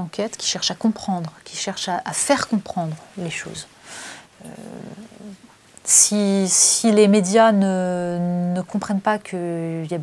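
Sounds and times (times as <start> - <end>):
woman speaking: 0.0 - 3.8, 4.4 - 10.0.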